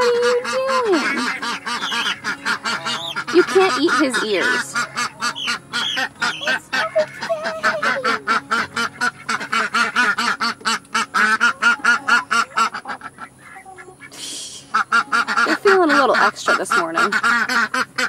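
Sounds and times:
ducks quacking: 0.0 - 18.0
rustling hiss: 14.1 - 14.8.

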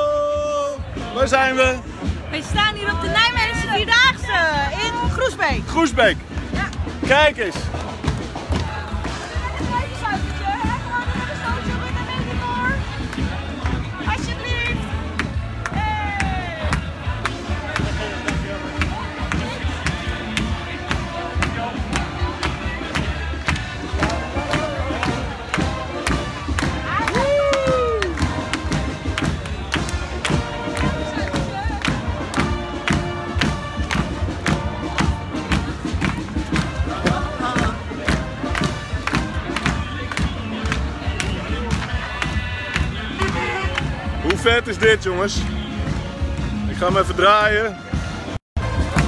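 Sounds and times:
loud music with steady beat: 0.4 - 49.0
crowd cheering: 6.5 - 47.0.

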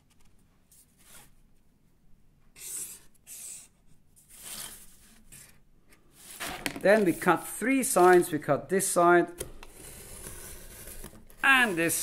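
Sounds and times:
marker pen drawing on cardboard: 2.5 - 5.5.

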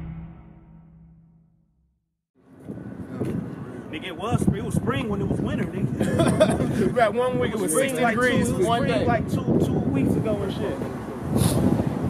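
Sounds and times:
dramatic logo sting: 0.0 - 1.8
street noise: 2.4 - 12.0
wind on microphone: 4.3 - 7.6, 8.2 - 12.0.

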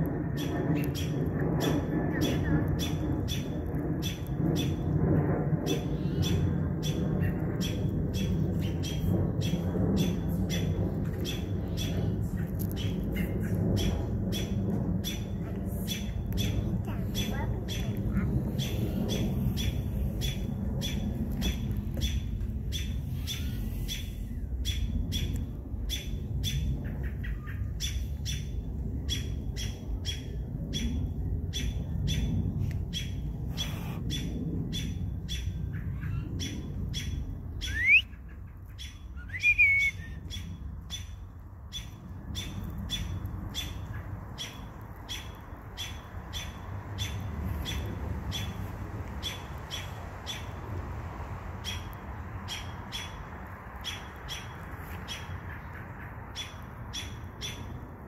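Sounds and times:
steady low rumble: 0.0 - 58.0.

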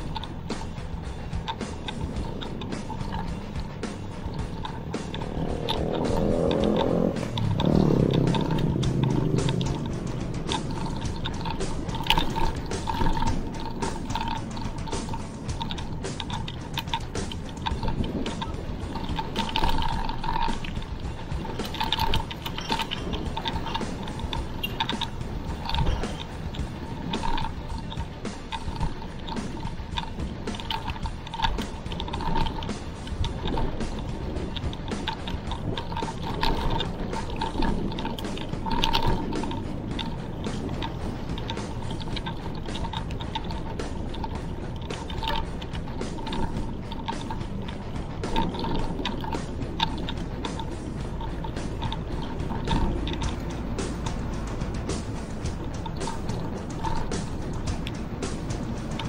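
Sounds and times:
bike clicks and rattles: 0.0 - 59.0
wind and tyres rumbling on road: 0.0 - 59.0.

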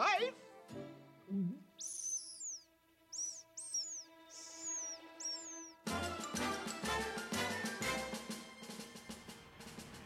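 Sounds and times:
cartoon bird-like tweets: 1.7 - 5.8
orchestral music with drumbeats: 5.8 - 10.0.

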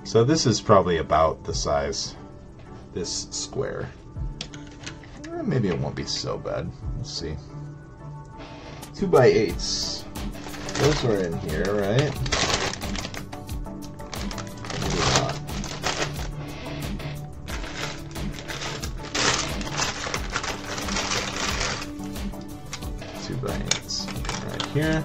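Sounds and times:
background music: 0.0 - 25.0
plastic bag rustling: 10.1 - 16.6, 17.4 - 25.0
plastic bricks clicking and clattering: 17.6 - 21.9, 23.6 - 25.0.

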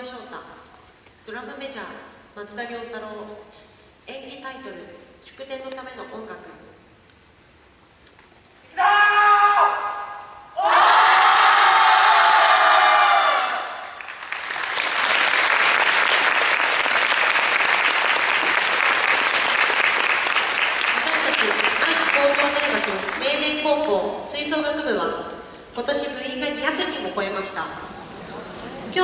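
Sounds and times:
audience applause: 13.9 - 23.4.

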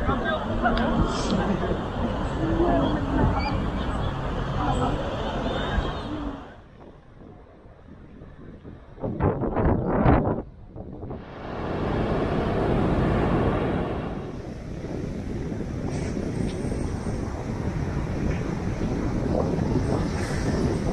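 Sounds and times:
wind buffeting microphone: 0.0 - 20.9
surf breaking: 11.2 - 20.9.

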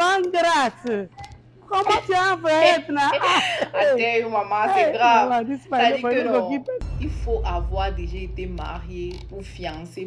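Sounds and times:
woman talking animatedly: 0.0 - 1.1, 1.7 - 10.0
woman laughing: 1.7 - 4.4.

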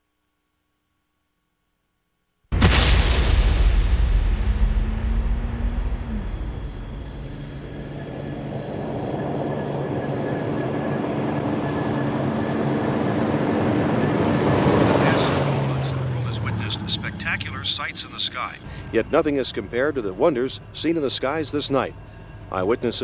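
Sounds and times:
low rumbling roar: 2.6 - 17.1.

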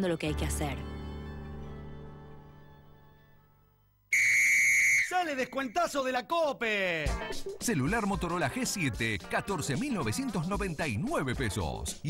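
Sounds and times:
background music: 0.0 - 3.9, 6.6 - 12.0
high-pitched whistle tone: 4.1 - 5.8.

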